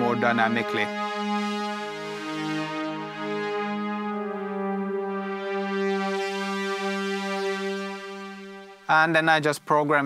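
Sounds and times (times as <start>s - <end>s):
synthesizer string chord: 0.0s - 9.0s.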